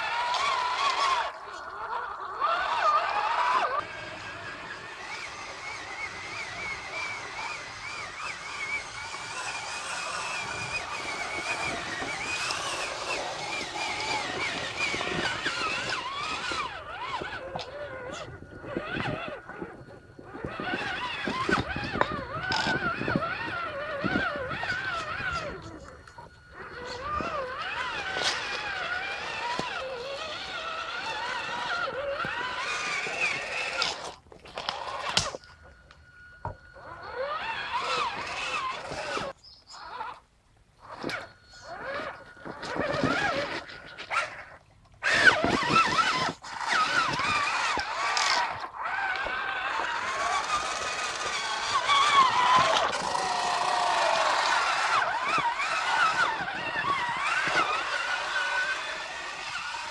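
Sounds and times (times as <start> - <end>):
electric motor whining: 0.0 - 59.9.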